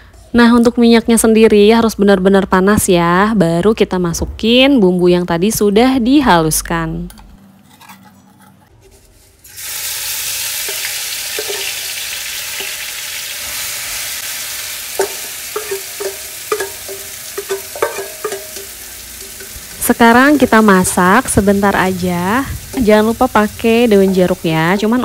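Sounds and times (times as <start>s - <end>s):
paste sizzling in hot oil: 9.4s - 25.0s.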